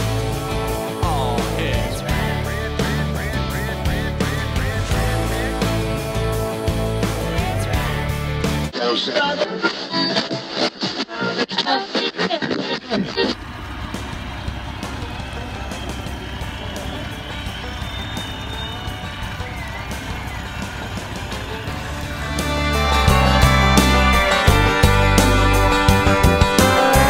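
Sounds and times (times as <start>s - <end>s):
boat motor: 0.0s - 8.7s, 13.4s - 27.0s
music with heavy bass beat: 0.0s - 8.7s, 13.4s - 27.0s.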